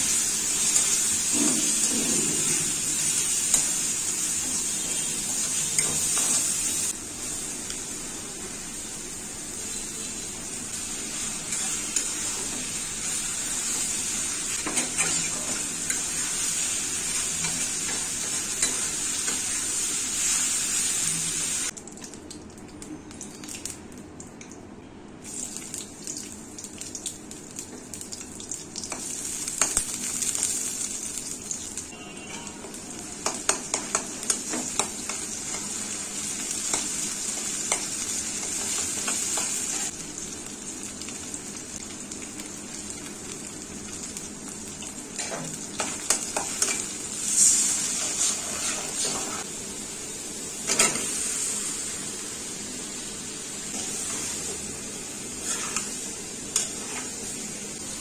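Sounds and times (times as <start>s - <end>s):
oil sizzling in a wok: 0.0s - 21.8s, 25.2s - 58.0s
metal spatula scraping a pan: 47.4s - 49.4s, 55.4s - 56.0s.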